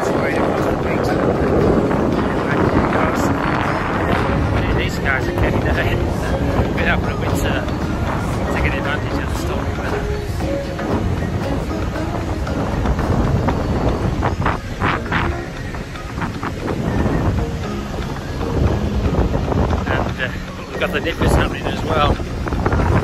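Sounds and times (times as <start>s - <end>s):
man's voice: 0.0s - 13.4s, 19.8s - 23.0s
wind buffeting microphone: 0.0s - 23.0s.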